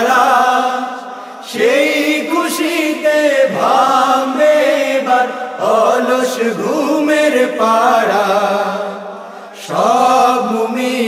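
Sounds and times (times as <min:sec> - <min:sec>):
men singing together: 0:00.0 - 0:11.0.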